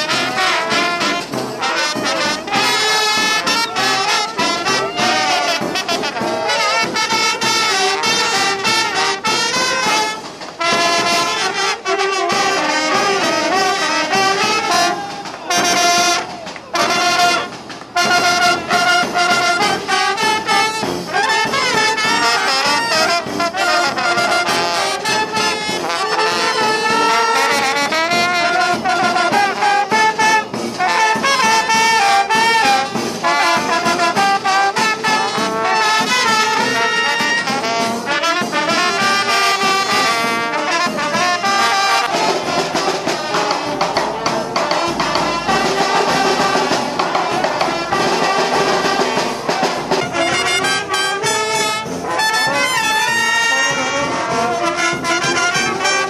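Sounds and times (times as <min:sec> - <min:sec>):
brass band playing lively melody: 0:00.0 - 0:56.0.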